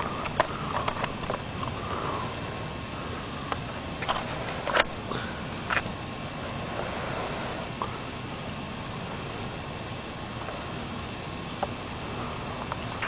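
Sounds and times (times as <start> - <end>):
outdoor background hiss: 0.0 - 13.0.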